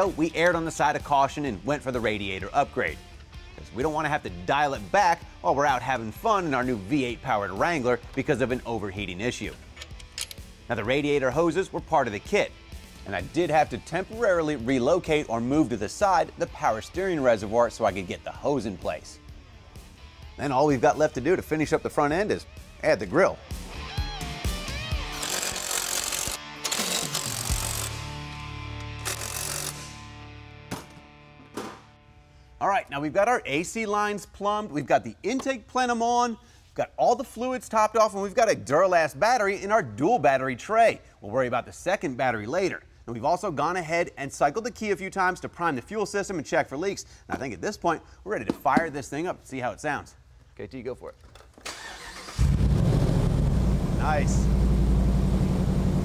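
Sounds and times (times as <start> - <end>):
power tool rattling bursts: 25.1 - 28.0, 29.0 - 29.9
engine cranking on starter: 51.6 - 53.6.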